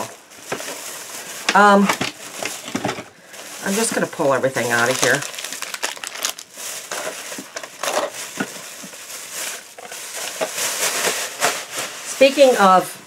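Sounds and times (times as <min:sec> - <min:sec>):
plastic bag rustling: 0:00.0 - 0:13.0.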